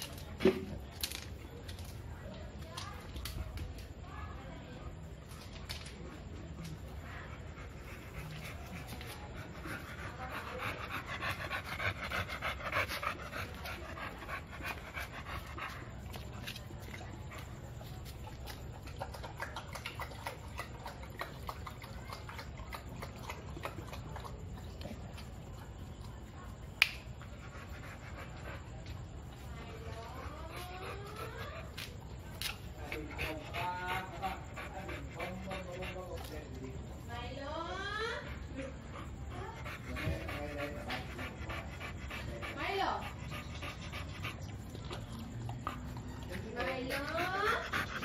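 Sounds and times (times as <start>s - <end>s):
dog panting: 6.2s - 48.0s
dog lapping water from a bowl: 16.1s - 25.9s, 40.0s - 48.0s.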